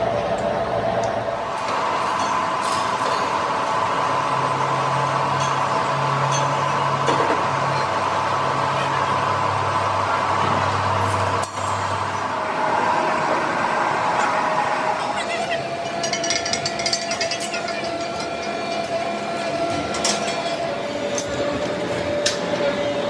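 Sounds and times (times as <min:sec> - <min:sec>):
workshop machinery running: 0:00.0 - 0:23.0.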